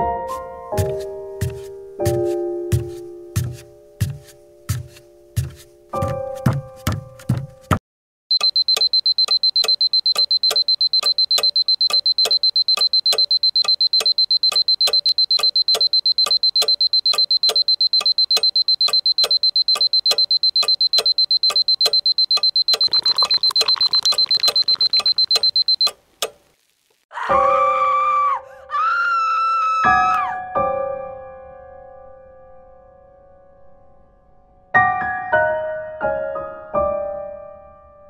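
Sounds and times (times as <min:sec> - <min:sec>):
electronic alarm beeping: 0:08.3 - 0:26.0.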